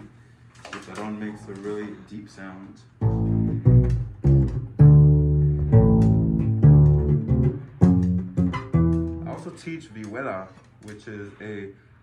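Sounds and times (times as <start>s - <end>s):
bass guitar plucked notes: 3.0s - 9.5s.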